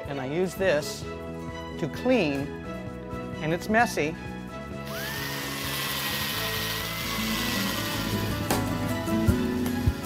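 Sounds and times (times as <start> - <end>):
electric drill scouring gourd: 4.8 - 10.0.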